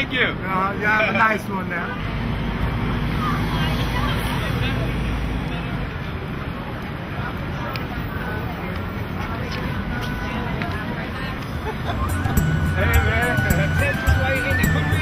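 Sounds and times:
crowd chatter: 0:00.0 - 0:15.0
passing traffic: 0:00.0 - 0:15.0.

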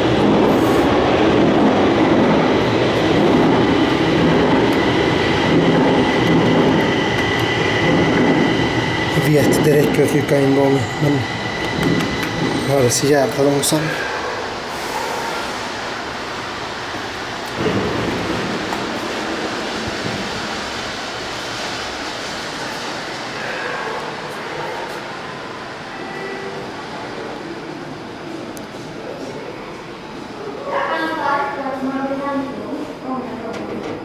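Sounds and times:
rail vehicle running noise: 0:00.0 - 0:34.0.

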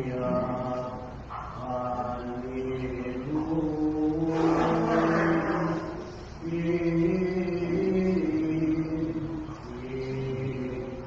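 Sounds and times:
man chanting long held notes: 0:00.0 - 0:11.0.

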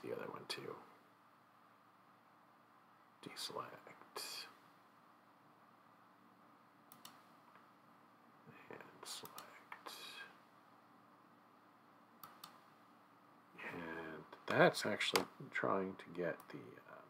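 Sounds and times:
faint room hum: 0:00.0 - 0:17.0
computer mouse clicks: 0:06.9 - 0:07.7, 0:09.2 - 0:09.6, 0:12.2 - 0:12.7.

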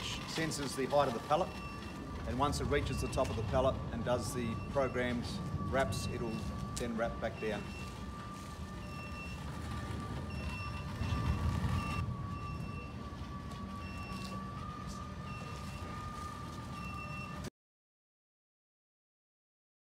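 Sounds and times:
low rumble: 0:00.0 - 0:17.3
machine motor whine: 0:00.0 - 0:17.5
short beeps: 0:00.0 - 0:17.5.

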